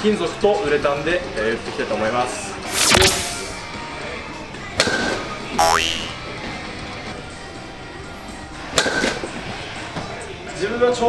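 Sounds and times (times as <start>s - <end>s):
rising boing tone: 5.6s - 6.2s.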